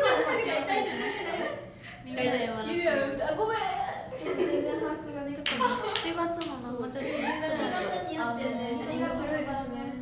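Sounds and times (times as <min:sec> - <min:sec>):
hand claps: 0:05.4 - 0:06.7.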